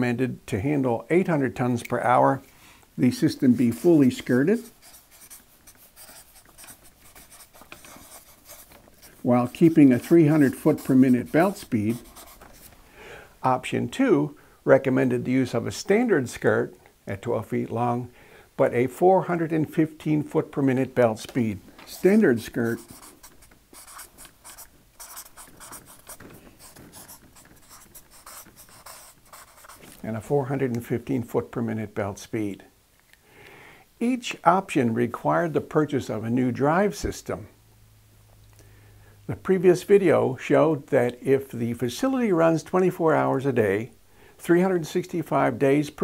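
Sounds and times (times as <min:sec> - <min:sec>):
marker writing on paper: 0:03.5 - 0:12.7, 0:21.9 - 0:30.0.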